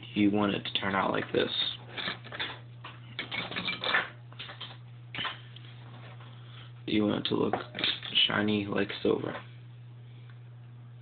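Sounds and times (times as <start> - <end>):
low hum: 0.0 - 11.0.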